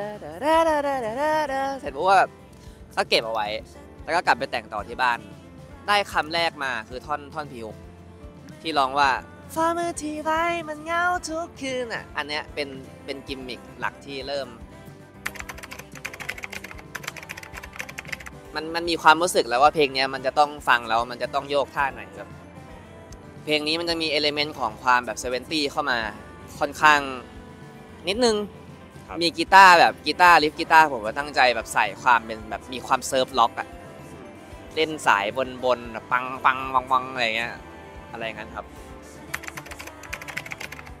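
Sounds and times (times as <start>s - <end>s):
soft background music: 0.0s - 41.0s
keyboard typing clicks: 15.2s - 18.4s, 39.3s - 40.9s.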